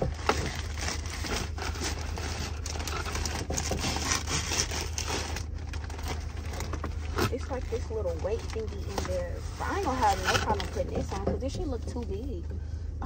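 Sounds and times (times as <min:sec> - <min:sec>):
plastic packaging crinkling: 0:00.0 - 0:11.3
steady low hum: 0:00.0 - 0:13.0.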